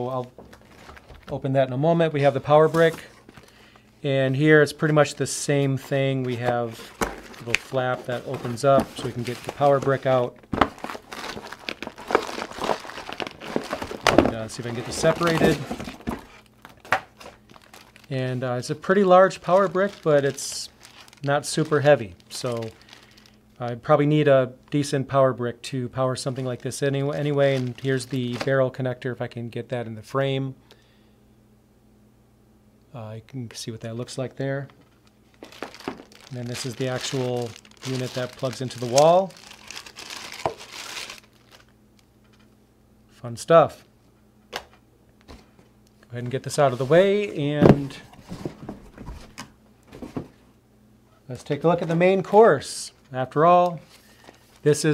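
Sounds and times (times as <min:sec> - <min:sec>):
faint steady hum: 0:00.0 - 0:54.9
plastic packaging crinkling: 0:00.2 - 0:01.4, 0:05.8 - 0:23.4, 0:26.2 - 0:28.6, 0:34.8 - 0:42.0, 0:53.7 - 0:54.9.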